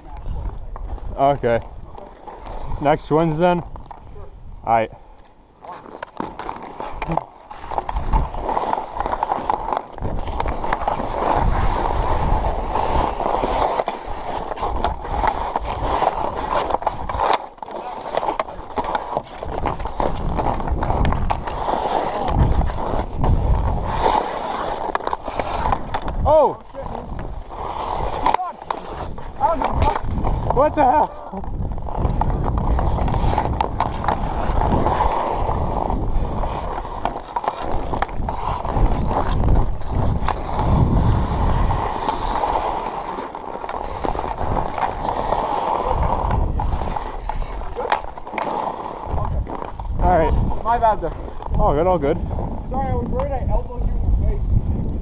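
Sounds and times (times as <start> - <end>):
skate blades scraping ice: 0.0 - 55.0.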